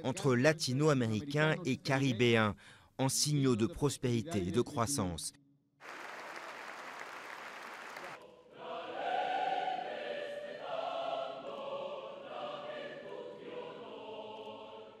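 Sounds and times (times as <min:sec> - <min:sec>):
audience applauding: 0:05.8 - 0:08.2
choir singing: 0:07.9 - 0:15.0.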